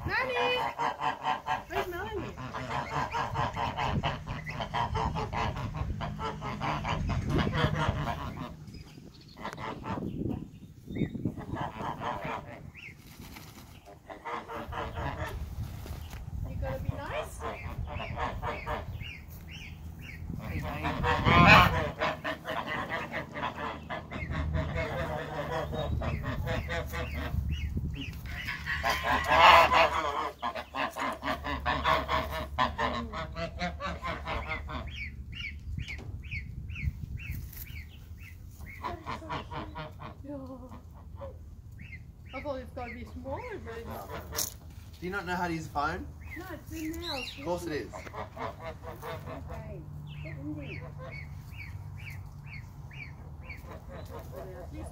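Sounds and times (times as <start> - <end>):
geese honking: 0.0 - 10.5, 11.1 - 13.0, 13.9 - 15.6, 16.6 - 37.3, 38.2 - 54.9.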